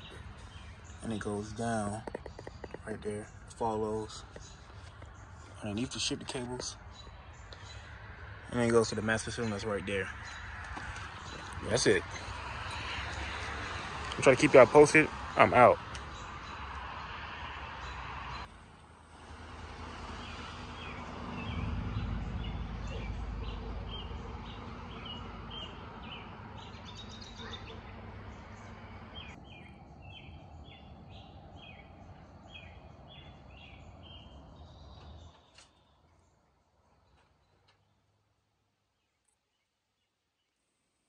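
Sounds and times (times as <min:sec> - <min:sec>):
birds chirping: 0:00.0 - 0:40.6.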